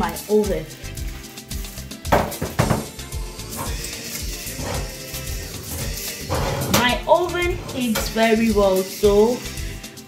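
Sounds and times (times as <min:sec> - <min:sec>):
background music with steady beat: 0:00.0 - 0:10.0
metal clanks of baking tray: 0:05.7 - 0:08.4.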